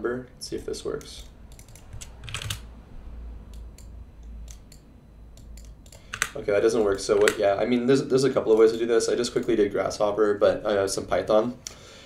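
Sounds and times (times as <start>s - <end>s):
low steady hum: 0.0s - 12.0s
keyboard typing: 1.0s - 2.7s, 3.5s - 7.5s.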